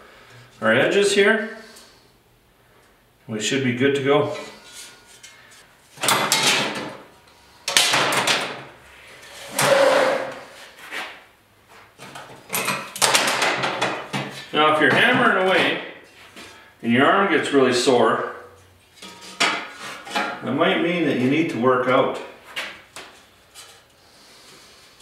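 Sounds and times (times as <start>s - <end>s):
man's voice: 14.6s - 15.8s
metal clanks: 19.0s - 20.4s
metal plate scraping and rattling: 19.0s - 20.4s.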